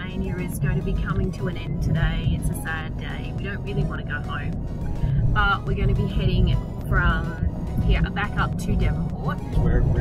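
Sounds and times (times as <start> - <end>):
woman talking: 0.0 - 4.5, 5.3 - 9.6
background music: 0.0 - 10.0
car cabin road rumble: 0.0 - 10.0.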